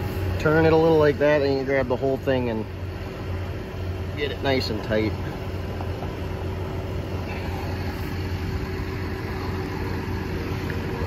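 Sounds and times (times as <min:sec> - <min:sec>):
engine idling with low hum: 0:00.0 - 0:11.0.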